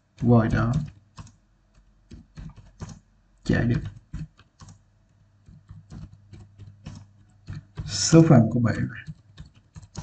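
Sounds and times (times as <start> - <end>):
computer keyboard typing: 0.0 - 4.8, 5.4 - 10.0.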